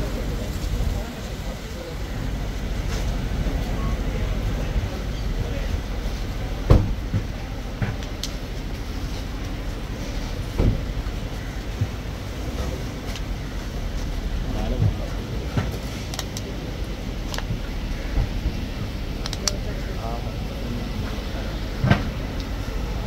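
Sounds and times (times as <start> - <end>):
car engine rumbling: 0.0 - 23.0
voices nearby: 0.0 - 23.0.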